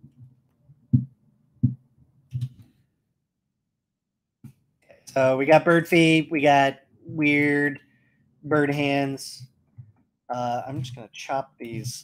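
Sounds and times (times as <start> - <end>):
soft low thumps: 0.0 - 2.5.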